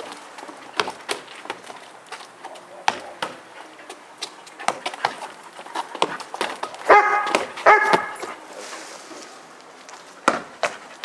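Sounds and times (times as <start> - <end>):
dog barking: 6.8 - 8.2.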